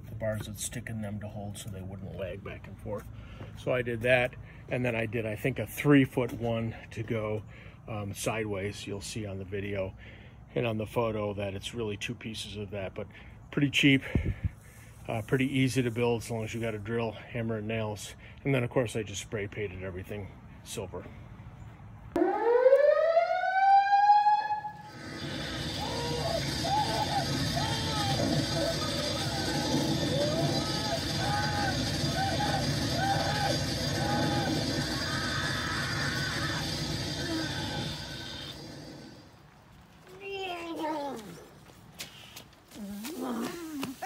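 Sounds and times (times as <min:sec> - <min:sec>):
loud rising electronic whine: 0:22.2 - 0:39.4
steady electrical buzz: 0:24.8 - 0:39.4.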